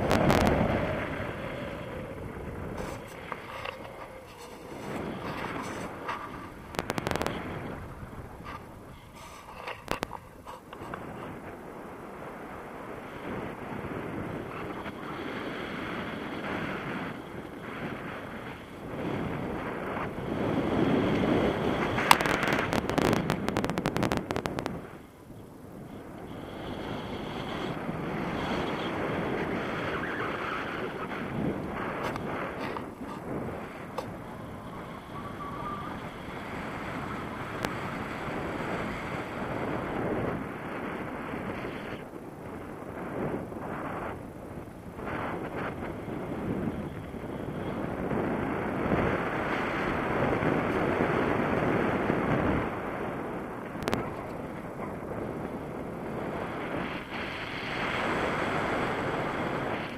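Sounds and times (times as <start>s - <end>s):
wind rushing over microphone: 0.0s - 59.9s.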